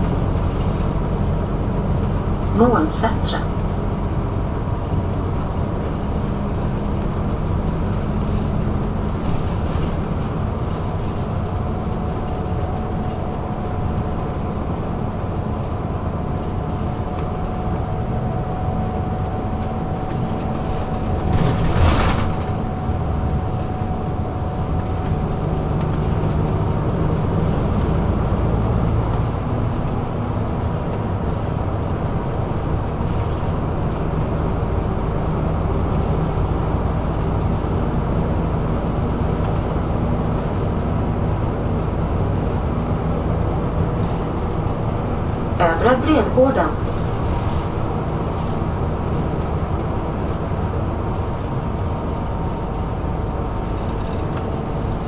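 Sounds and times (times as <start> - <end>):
bus engine and road rumble: 0.0 - 55.0.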